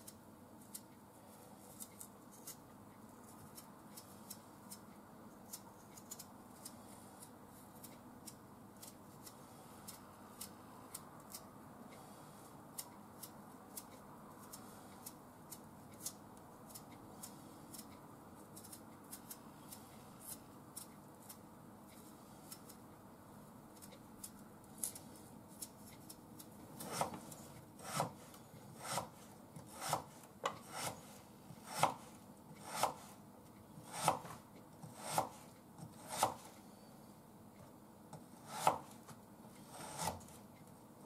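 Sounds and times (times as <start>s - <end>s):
knife scraping potato: 3.2s - 11.5s, 23.8s - 33.2s, 33.8s - 36.6s, 38.2s - 40.4s.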